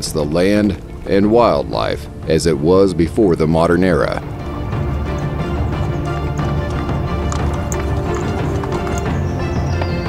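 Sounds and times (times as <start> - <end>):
background music: 0.0 - 10.0
horse hooves clip-clopping: 4.0 - 10.0.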